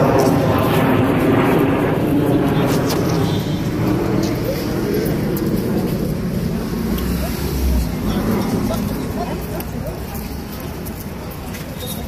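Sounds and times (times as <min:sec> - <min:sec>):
crowd talking: 0:00.0 - 0:12.0
traffic rumble: 0:00.0 - 0:12.0.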